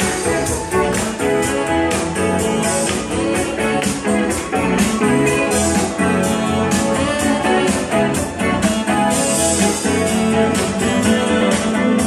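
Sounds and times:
live band with guitar: 0.0 - 12.0.

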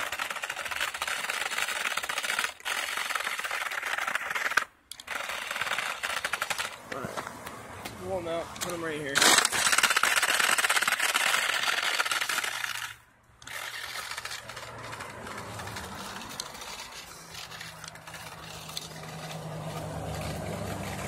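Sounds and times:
rc car motor humming: 0.0 - 6.8, 9.2 - 21.0.

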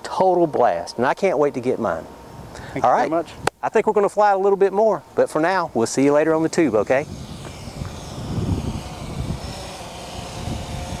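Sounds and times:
quadcopter propellers whirring: 0.0 - 3.5, 4.4 - 11.0.

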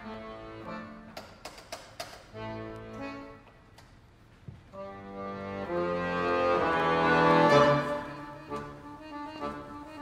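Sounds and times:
accordions playing chords: 0.0 - 1.6, 2.2 - 3.9, 4.7 - 10.0.

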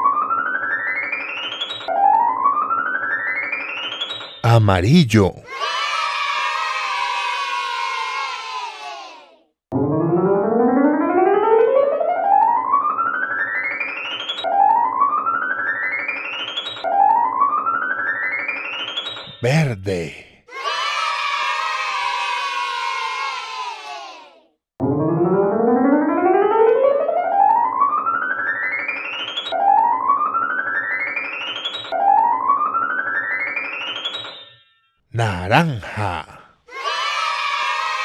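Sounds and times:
children cheering: 5.5 - 9.1.

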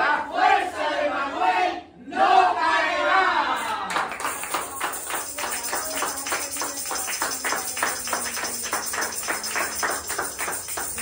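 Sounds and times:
hands clapping in rhythm: 3.8 - 11.0
tambourine jingles: 4.2 - 11.0.

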